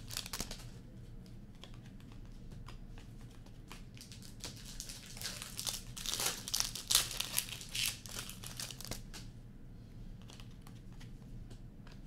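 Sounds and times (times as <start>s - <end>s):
foil wrapper crinkling and tearing: 0.0s - 0.6s, 3.9s - 9.0s.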